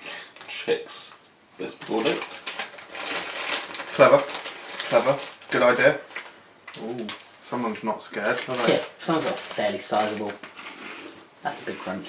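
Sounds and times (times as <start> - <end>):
plastic crisp packet crinkling: 1.8 - 10.7.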